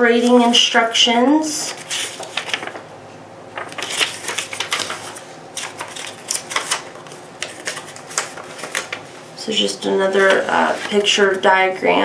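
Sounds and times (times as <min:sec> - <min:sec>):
paper rustling and crinkling: 0:01.7 - 0:02.8, 0:03.6 - 0:09.2, 0:10.1 - 0:11.5.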